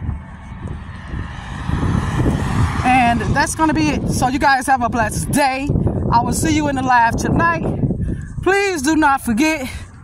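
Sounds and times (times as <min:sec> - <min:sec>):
vehicle driving past: 0:00.0 - 0:04.2.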